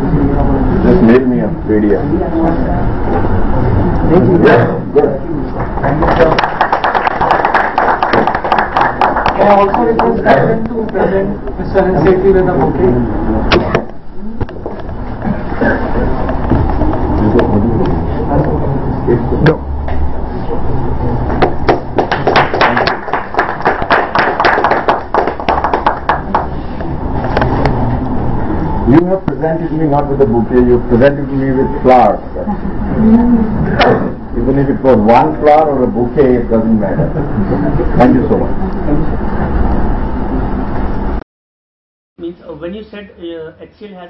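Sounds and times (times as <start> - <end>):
low steady hum: 0.0 - 41.2
audience applauding: 5.8 - 10.2, 21.4 - 26.8.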